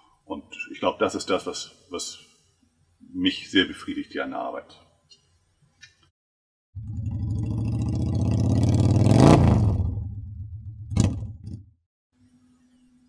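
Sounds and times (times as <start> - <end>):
vehicle engine passing by: 6.8 - 10.0.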